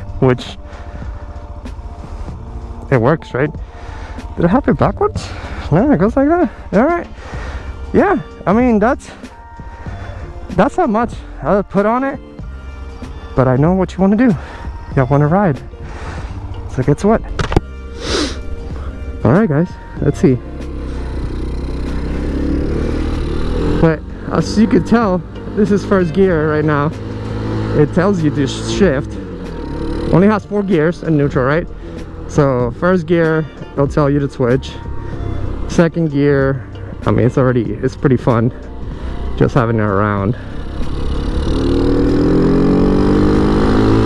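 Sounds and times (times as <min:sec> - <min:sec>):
motorcycle engine accelerating: 0:20.2 - 0:44.0.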